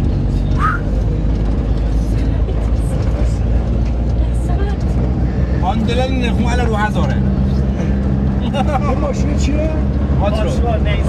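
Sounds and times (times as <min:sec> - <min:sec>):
road and tyre noise: 0:00.0 - 0:11.0
vehicle engine drone: 0:00.0 - 0:11.0.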